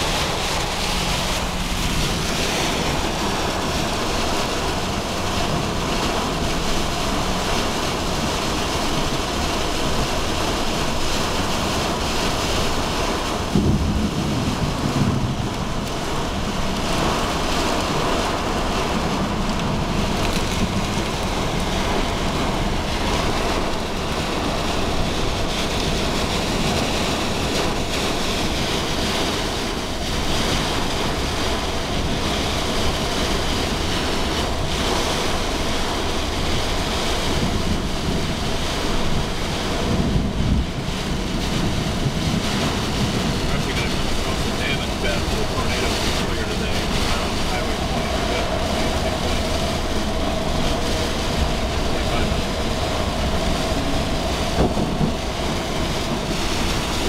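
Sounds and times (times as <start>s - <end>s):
heavy rain on a moving car: 0.0s - 57.0s
wind: 0.0s - 57.0s.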